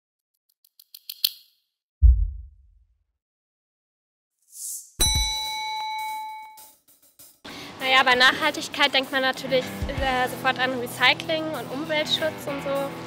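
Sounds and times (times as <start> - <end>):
deep boom: 2.0 - 2.8
bell-like ding: 5.0 - 6.8.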